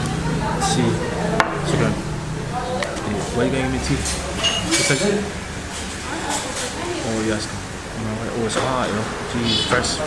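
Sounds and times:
low steady hum: 0.0 - 6.2
tableware knocking on table: 1.4 - 1.9.

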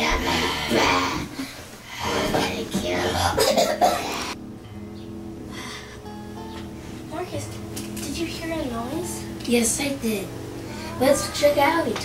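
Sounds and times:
background music: 3.0 - 11.6
child whispering: 10.7 - 11.6.

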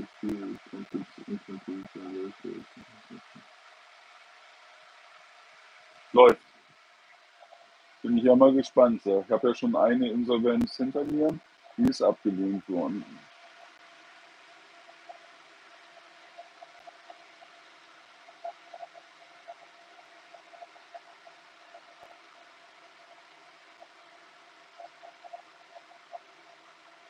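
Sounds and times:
faint steady hiss: 0.0 - 27.0
faint ticks: 0.0 - 27.0.

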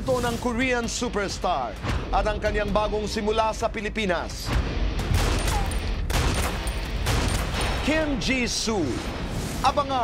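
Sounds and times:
rapid gunfire: 5.0 - 8.0.

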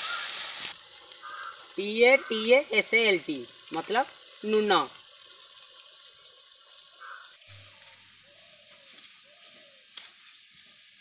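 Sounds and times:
onions sizzling in hot oil: 0.0 - 11.0.

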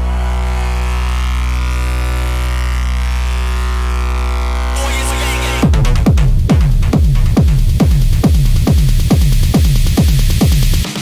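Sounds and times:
deep steady bass note: 0.0 - 10.9.

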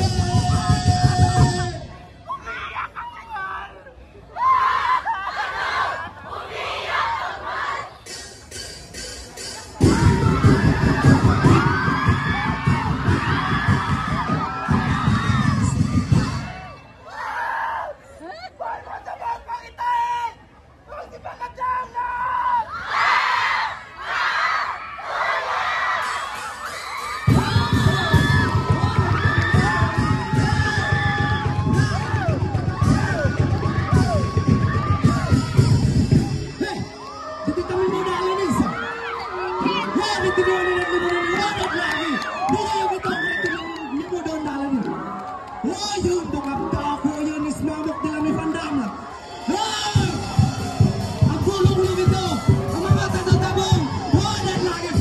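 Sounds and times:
dance music with pounding drums: 0.0 - 1.9, 8.1 - 16.6, 26.5 - 37.0, 49.8 - 55.0
people shouting and cheering: 0.0 - 55.0
people shrieking: 9.8 - 18.8, 22.0 - 44.6.

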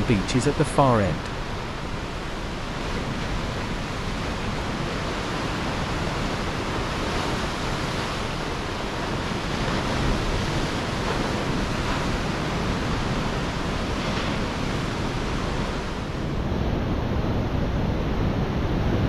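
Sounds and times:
ocean surf breaking: 0.0 - 19.0
wind on microphone: 1.6 - 19.0.

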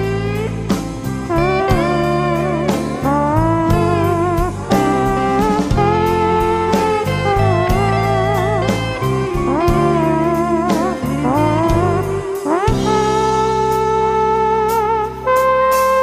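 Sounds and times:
electric guitar solo: 0.0 - 16.0
rock drums and bass: 0.0 - 16.0.

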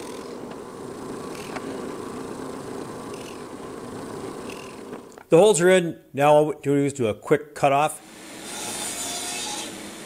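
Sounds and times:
power saw cutting wood: 0.0 - 0.6, 2.9 - 5.2, 8.0 - 10.0.

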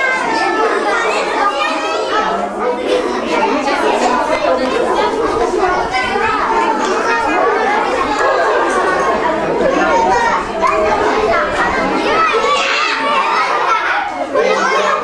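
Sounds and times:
children talking and shouting: 0.0 - 15.0.

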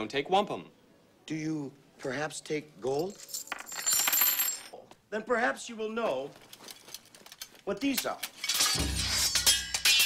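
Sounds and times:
coins clinking on counter: 2.9 - 4.8.

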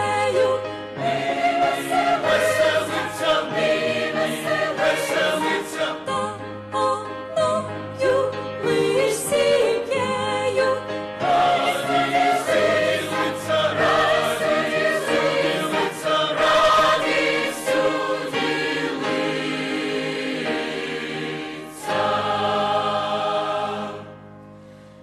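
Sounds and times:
mixed choir singing: 0.0 - 24.3.

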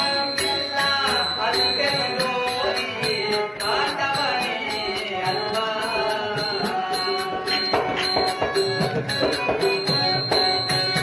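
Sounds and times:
high tapping beat: 0.0 - 11.0.

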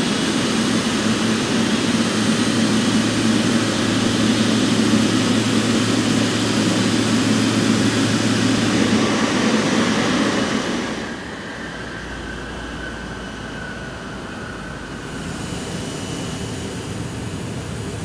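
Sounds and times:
jet engines whining: 0.0 - 18.0.

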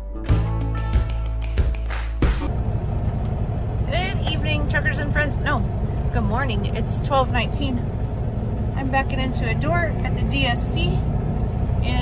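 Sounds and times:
diesel truck engine idling: 2.4 - 12.0
woman speaking: 3.9 - 7.8, 8.8 - 11.1, 11.8 - 12.0.

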